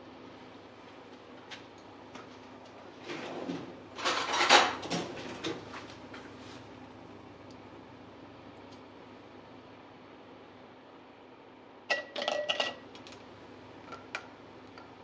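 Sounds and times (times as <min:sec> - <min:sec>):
cutlery rummaging in drawer: 0:04.0 - 0:05.5.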